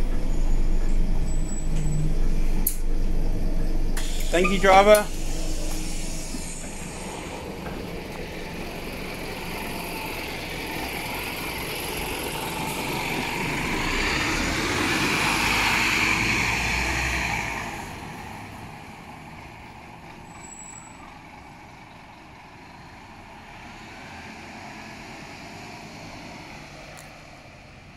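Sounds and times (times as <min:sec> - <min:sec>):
bus diesel engine accelerating: 0:00.0 - 0:27.9.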